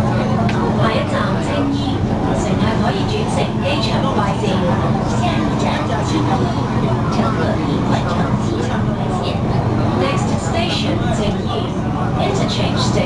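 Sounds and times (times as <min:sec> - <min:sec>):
train running rumble: 0:00.0 - 0:13.0.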